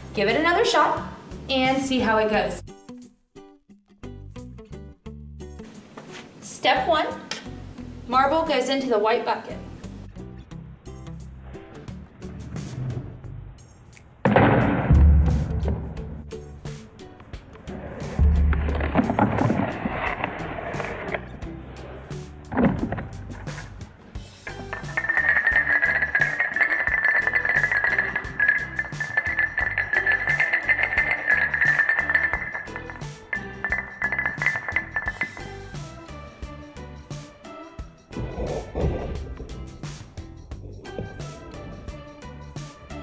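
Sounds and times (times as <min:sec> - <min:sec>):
background music: 0:00.0 - 0:43.0
heavy knocks and rolling: 0:14.2 - 0:16.3, 0:17.7 - 0:21.3, 0:22.3 - 0:35.7.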